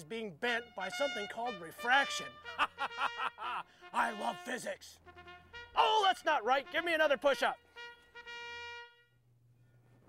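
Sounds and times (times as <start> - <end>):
brass note: 0.4 - 9.2.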